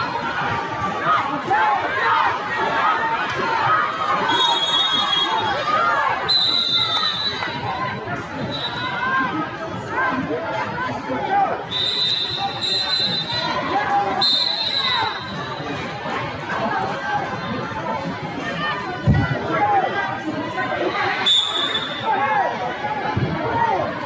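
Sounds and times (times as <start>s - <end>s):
referee's whistle blasts: 4.3s - 5.5s, 6.3s - 7.6s, 8.4s - 9.0s, 11.7s - 15.4s, 21.2s - 22.1s.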